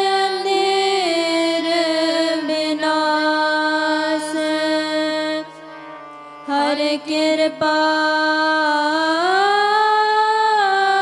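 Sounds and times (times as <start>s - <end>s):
women singing long notes: 0.0s - 5.6s, 6.5s - 11.0s
harmonium tones: 0.0s - 11.0s.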